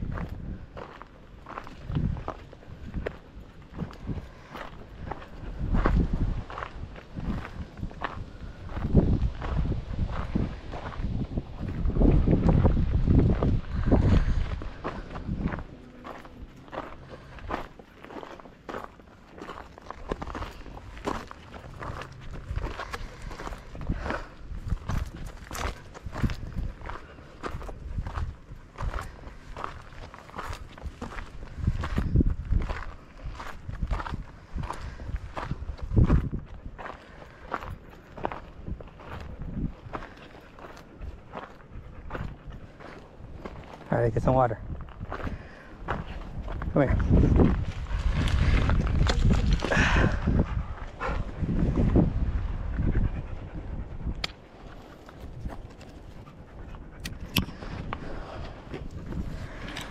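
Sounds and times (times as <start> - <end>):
footsteps on gravel: 0.0 - 51.7, 57.5 - 59.9
low rumbles: 0.0 - 59.9.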